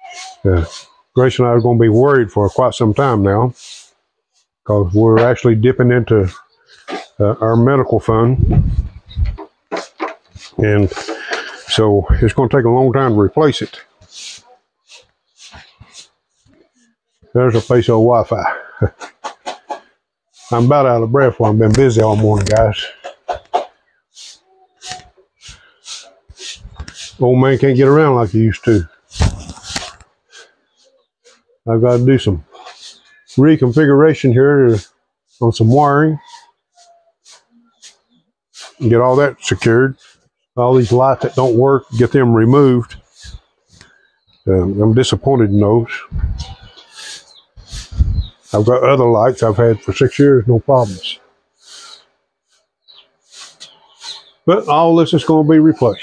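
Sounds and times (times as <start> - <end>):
soft breath close to microphone: 14.0 - 16.2, 46.0 - 48.5, 51.6 - 54.3
man breathing hard: 14.1 - 16.0, 24.1 - 27.2, 47.0 - 48.3, 51.6 - 52.6, 53.2 - 54.1.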